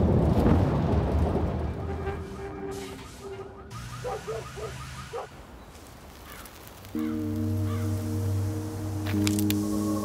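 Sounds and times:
electronic soundtrack chord: 7.0 - 10.0.

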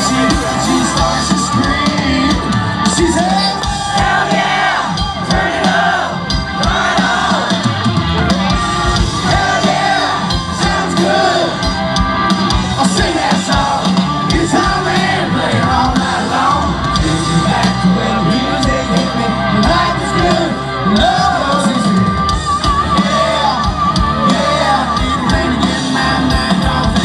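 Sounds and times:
lead vocal singing: 0.0 - 27.0
live country-rock band: 0.0 - 27.0.

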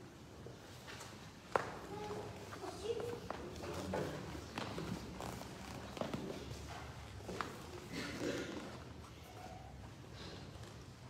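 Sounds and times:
footsteps and shuffling: 0.5 - 11.0.

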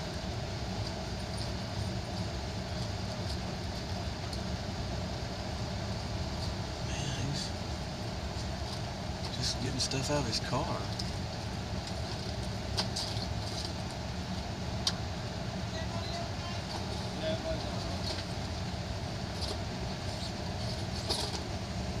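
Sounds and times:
vehicle idling rumble: 0.0 - 22.0
faint voices: 6.8 - 7.6, 9.4 - 11.0, 15.6 - 18.2.

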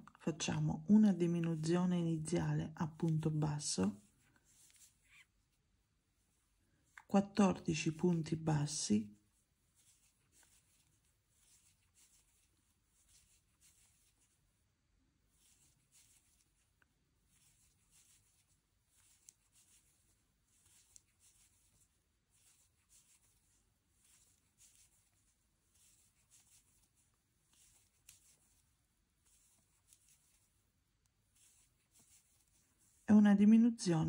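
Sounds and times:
soft yarn rustles: 0.0 - 34.0.

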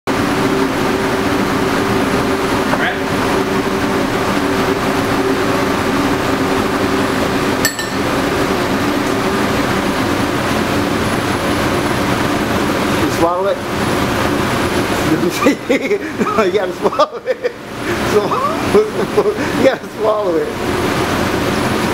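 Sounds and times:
exhaust hood fans rushing air: 0.1 - 21.9
man laughing: 15.2 - 19.9.

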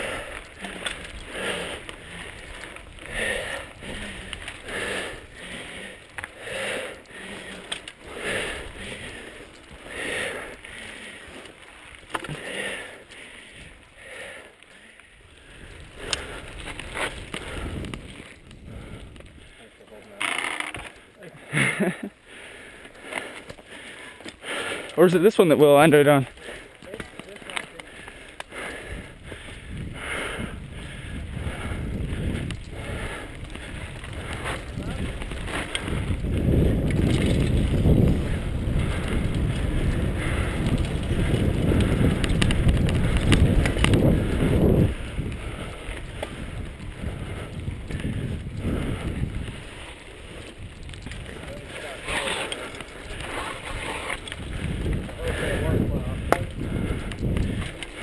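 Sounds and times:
bike tyres rolling and rattling: 0.0 - 58.0
wind on microphone: 15.4 - 19.5, 28.5 - 58.0.

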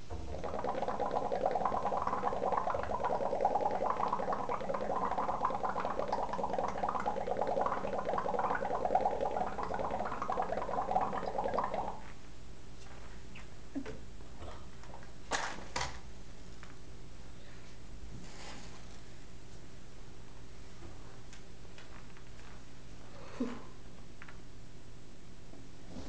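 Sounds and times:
gas bubbling in soapy water: 0.1 - 12.0.

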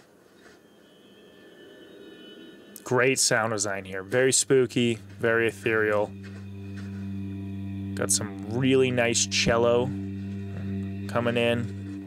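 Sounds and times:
low sustained drone: 0.5 - 12.0.

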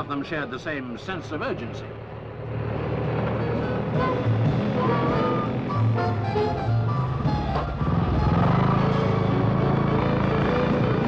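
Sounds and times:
engine rumbling: 0.0 - 11.0
background music: 2.5 - 11.0.

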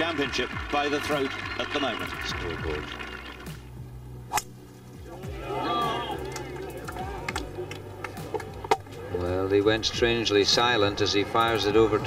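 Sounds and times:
golf club striking ball: 4.3 - 4.8
spectators murmuring: 5.0 - 12.0.

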